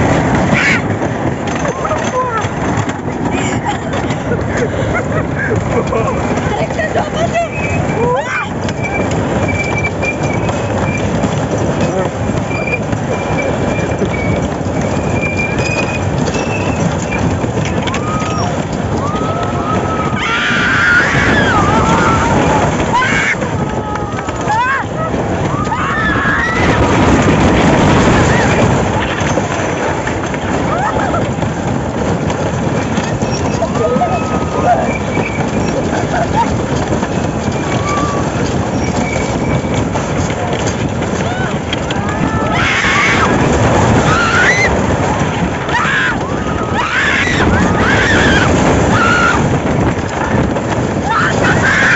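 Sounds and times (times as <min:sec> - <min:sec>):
roller coaster rattle and rumble: 0:00.0 - 0:51.9
faint rider voices: 0:11.7 - 0:12.2.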